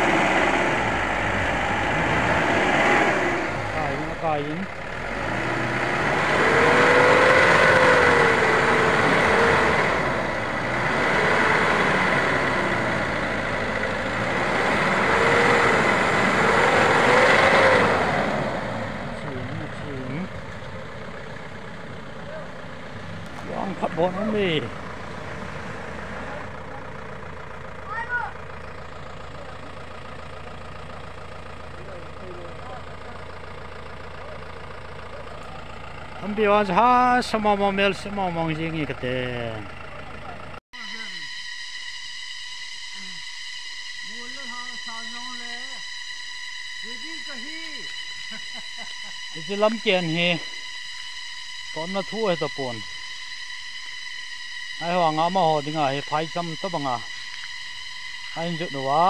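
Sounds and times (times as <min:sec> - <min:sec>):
voices calling out: 0:00.0 - 0:41.4, 0:42.7 - 0:59.0
car engine revving: 0:00.0 - 0:59.0.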